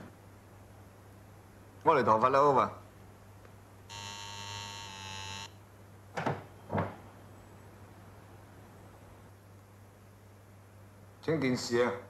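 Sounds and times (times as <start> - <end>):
electric doorbell buzzing: 3.9 - 5.6.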